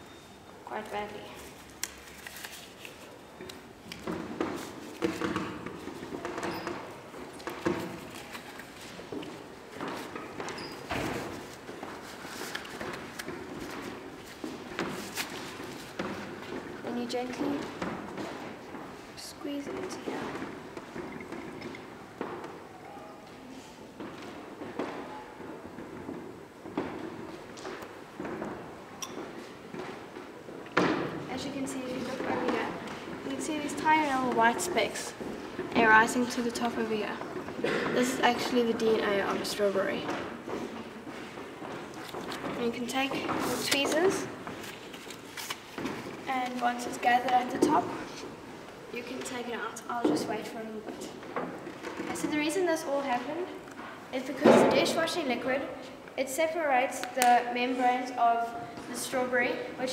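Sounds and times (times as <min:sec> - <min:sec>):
rubber gloves rustling: 0:00.0 - 0:55.0.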